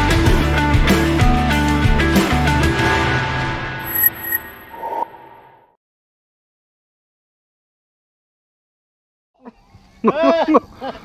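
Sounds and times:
man laughing: 10.0 - 11.0.

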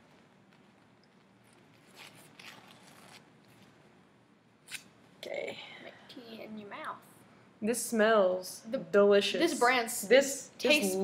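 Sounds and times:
paper tea bags tearing: 1.5 - 3.6.

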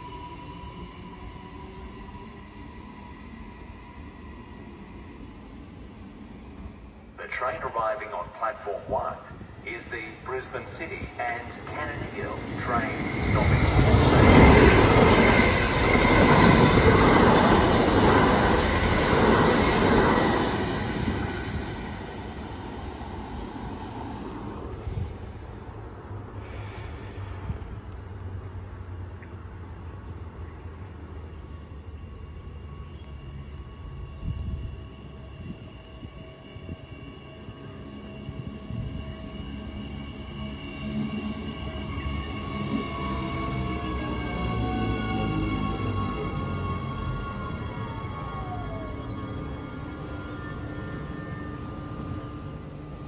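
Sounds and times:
electric train whining: 0.0 - 29.0, 29.6 - 53.0.

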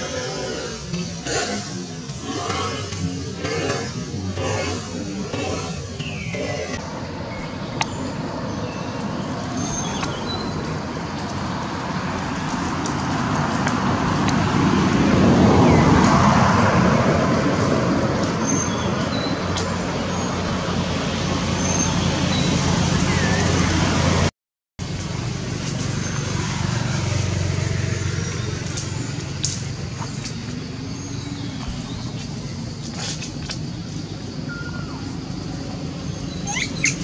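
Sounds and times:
traffic road noise: 0.0 - 37.0.

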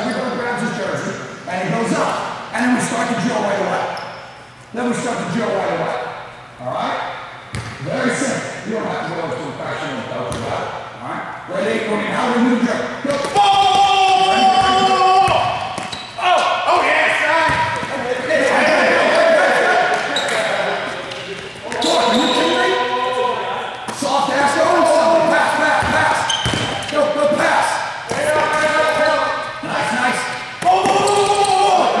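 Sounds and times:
basketball bouncing on hardwood: 7.5 - 7.8, 25.8 - 26.8
players shouting: 13.1 - 21.0, 21.6 - 26.4, 27.3 - 32.0.

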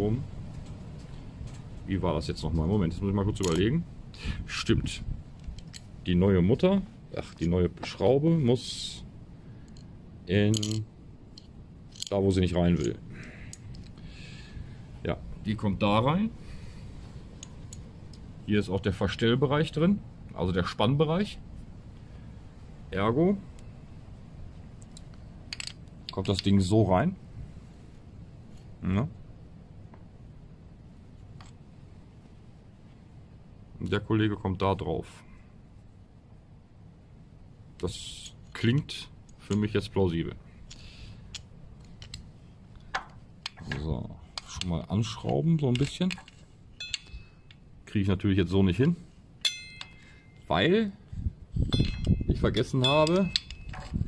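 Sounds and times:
light clicks of metal roller: 44.3 - 47.7, 51.7 - 54.0.

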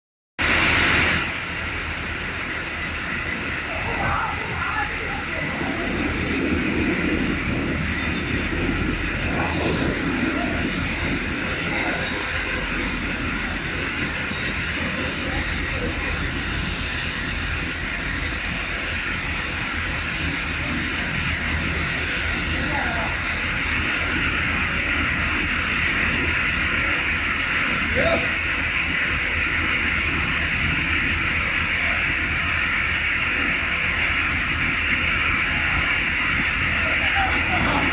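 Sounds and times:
sawmill machinery din: 0.4 - 37.9.

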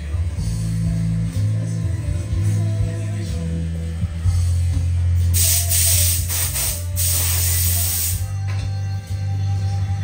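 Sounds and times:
background music with bass: 0.0 - 10.0
spray hissing: 5.4 - 8.2.

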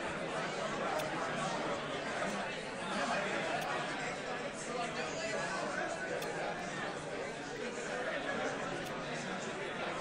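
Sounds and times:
murmur of audience conversation: 0.0 - 10.0.

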